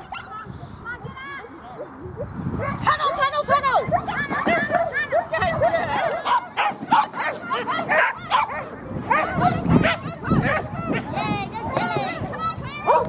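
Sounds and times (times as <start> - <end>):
dogs barking and yelping: 1.7 - 11.2, 12.8 - 13.0.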